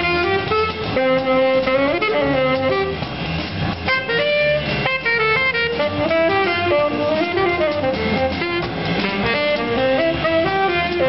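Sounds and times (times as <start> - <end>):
drum kit: 0.0 - 11.0
plucked double bass: 0.0 - 11.0
saxophone: 0.0 - 11.0.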